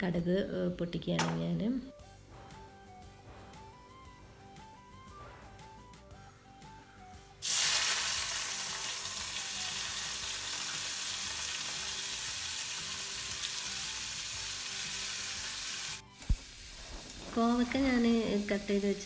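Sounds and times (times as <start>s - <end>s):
vegetables sizzling in hot oil: 7.4s - 19.0s.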